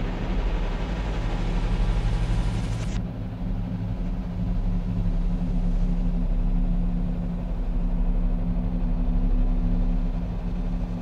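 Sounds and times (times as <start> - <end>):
low rumbling drone music: 0.0 - 11.0
sustained low hum tones: 0.0 - 11.0.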